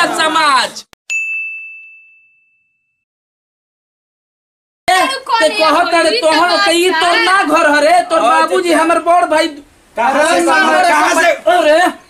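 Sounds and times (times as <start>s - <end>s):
bell-like ding: 1.1s - 3.0s.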